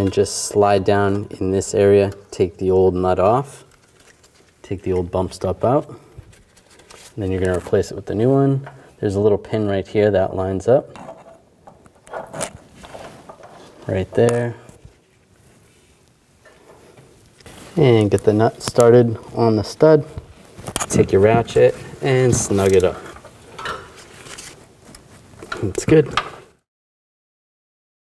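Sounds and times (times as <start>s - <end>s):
rubber rustling on steel frame: 0.0s - 9.3s, 10.0s - 26.6s.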